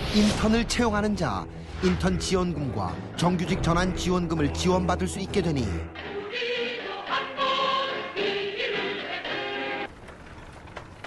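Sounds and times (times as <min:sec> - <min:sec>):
mixed choir singing: 0:06.0 - 0:09.9.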